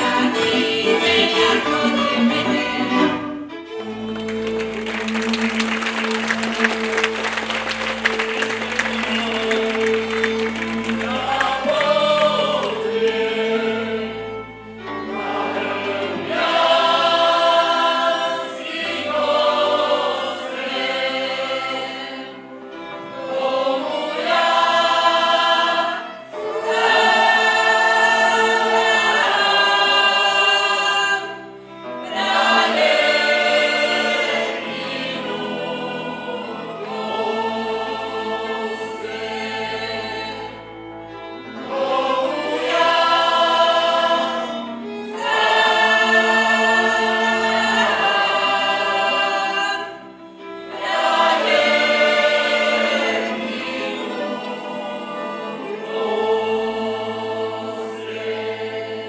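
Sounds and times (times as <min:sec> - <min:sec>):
men and women singing folk song: 0:00.0 - 0:03.4, 0:08.6 - 0:59.0.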